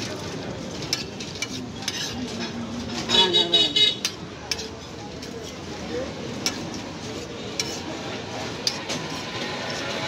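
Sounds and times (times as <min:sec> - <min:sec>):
metal spatula scraping griddle: 0:00.7 - 0:03.2, 0:04.0 - 0:10.0.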